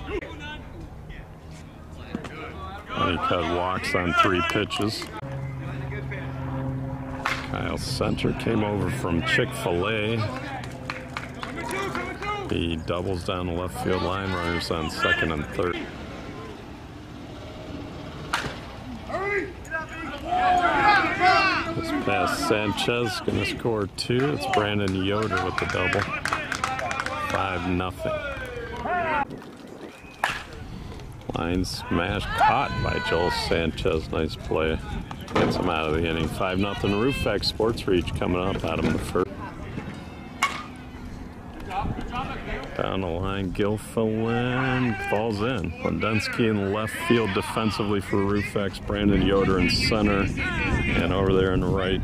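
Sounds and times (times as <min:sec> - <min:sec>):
bat hitting softball: 0:07.2 - 0:07.5, 0:18.3 - 0:18.7, 0:40.4 - 0:40.8.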